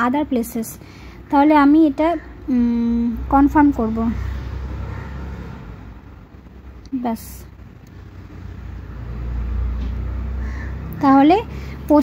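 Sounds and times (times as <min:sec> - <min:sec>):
motor vehicle passing: 0:00.8 - 0:12.0.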